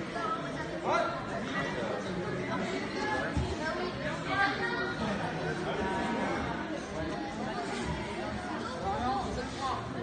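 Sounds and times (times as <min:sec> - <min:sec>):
crowd chatter in echoing hall: 0:00.0 - 0:10.0.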